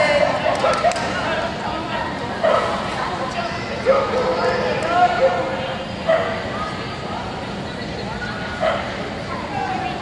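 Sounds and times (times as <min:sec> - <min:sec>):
arena background noise: 0:00.0 - 0:10.0.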